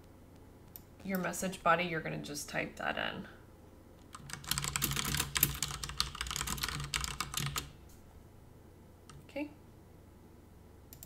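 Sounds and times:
fast keyboard typing: 4.1s - 7.7s.

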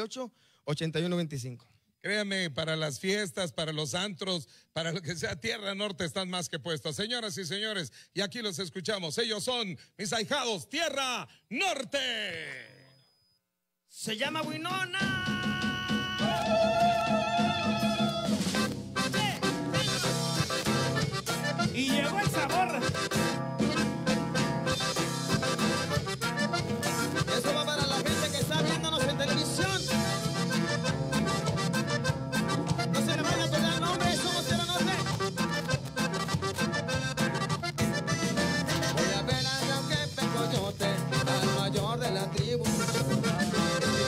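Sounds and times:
guitar: 14.2s - 44.0s
drum and percussion beat: 14.5s - 44.0s
accordion: 15.0s - 44.0s
bass guitar: 15.0s - 44.0s
saxophone: 16.1s - 21.8s, 22.8s - 28.3s, 29.8s - 44.0s.

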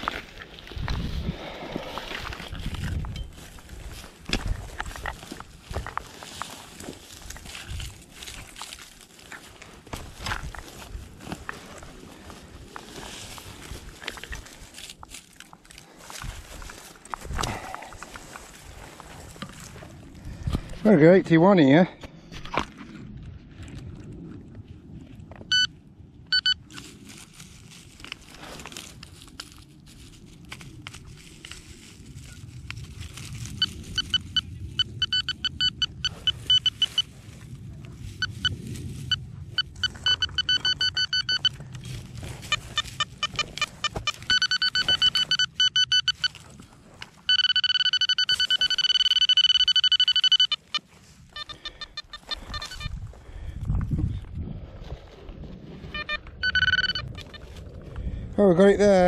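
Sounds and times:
digging in soil: 0.0s - 20.9s, 26.4s - 53.6s
metal detector pinpointer beeping: 2.9s - 4.4s, 25.5s - 25.7s, 26.3s - 26.8s, 33.5s - 37.2s, 38.2s - 53.0s, 55.9s - 57.6s.

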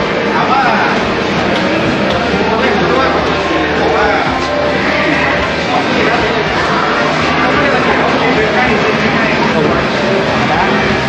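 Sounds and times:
indistinct voices: 0.0s - 11.0s
shopping mall background noise: 0.0s - 11.0s.

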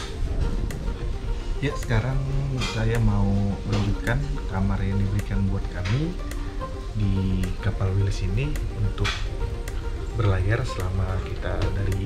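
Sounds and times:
background music: 0.0s - 12.0s
man speaking: 1.6s - 6.3s, 6.9s - 9.3s, 10.1s - 12.0s.

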